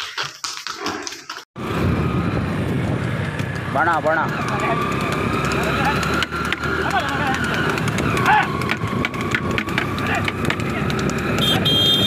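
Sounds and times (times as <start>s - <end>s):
wooden buggy clattering on road: 0.0s - 1.4s, 2.1s - 12.0s
low rumble of wheels: 0.2s - 12.0s.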